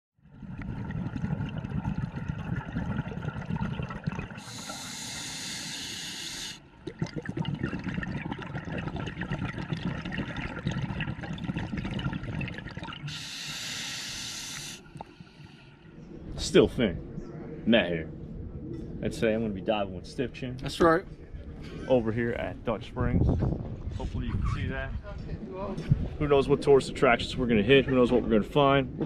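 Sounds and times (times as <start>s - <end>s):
exhaled bubbles underwater: 0.2s - 17.7s
regulator inhalation hiss: 4.4s - 6.6s, 13.1s - 15.5s.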